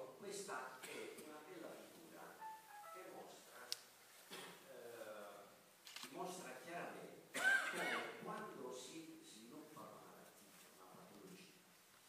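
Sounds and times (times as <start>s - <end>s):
melody of high notes: 2.4s - 3.5s.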